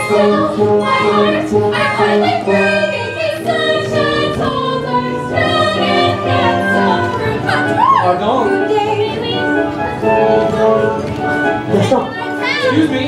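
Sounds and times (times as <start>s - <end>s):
mixed chorus singing: 0.0s - 11.5s
instrumental accompaniment: 0.0s - 13.0s.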